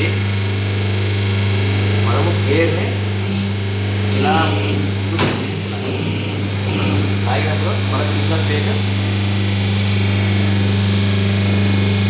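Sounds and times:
machine humming: 0.0 - 12.0.

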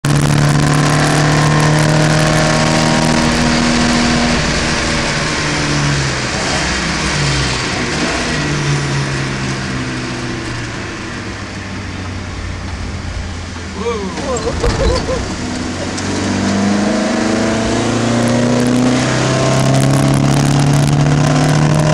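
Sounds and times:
race car engine running hard: 0.0 - 21.9.

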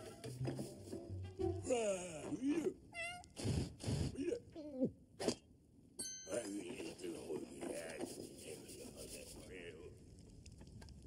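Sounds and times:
cartoon cat cries: 2.9 - 3.4.

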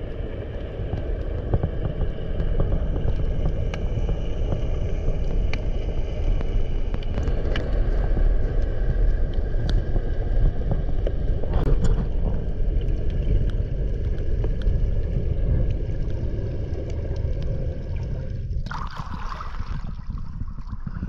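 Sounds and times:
underwater rumble: 0.0 - 21.0.

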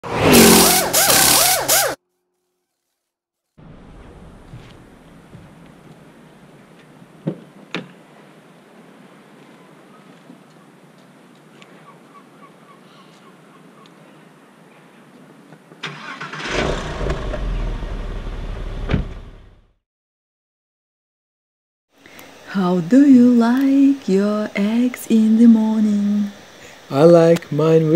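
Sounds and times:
car engine revving: 0.0 - 2.0, 15.9 - 19.6
starter cranking engine: 15.8 - 18.4.

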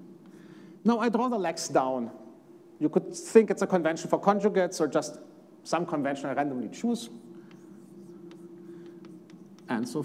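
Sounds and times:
low room hum: 0.0 - 10.0
chalk scratching on blackboard: 7.0 - 10.0
chalk tapping on blackboard: 7.3 - 10.0.

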